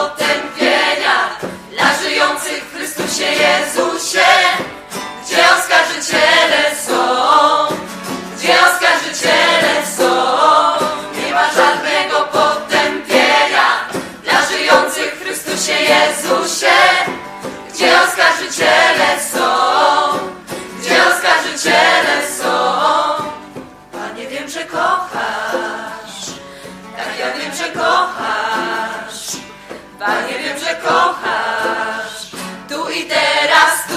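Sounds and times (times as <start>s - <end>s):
choir singing worship song: 0.0s - 33.9s
musical accompaniment: 0.0s - 33.9s.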